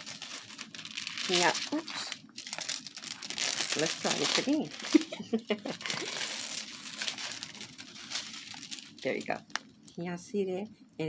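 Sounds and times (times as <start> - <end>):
plastic film crinkling: 0.0 - 9.9.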